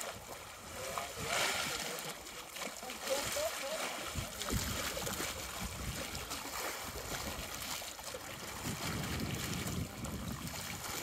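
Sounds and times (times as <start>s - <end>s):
small waves lapping: 0.0s - 11.0s
wind buffeting microphone: 4.0s - 11.0s.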